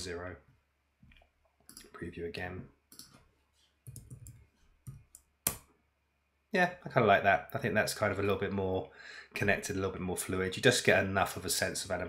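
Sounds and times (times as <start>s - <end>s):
computer keyboard typing: 3.8s - 5.6s.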